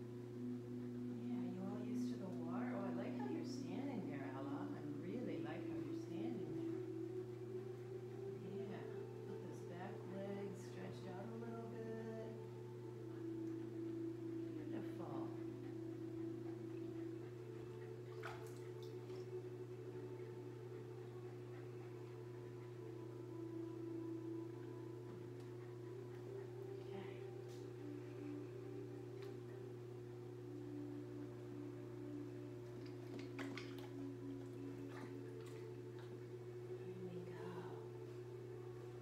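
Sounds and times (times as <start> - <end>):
slow sustained music tones: 0.0 - 39.0
steady low hum: 0.0 - 39.0
pool water splashing: 17.9 - 19.5, 32.6 - 36.7.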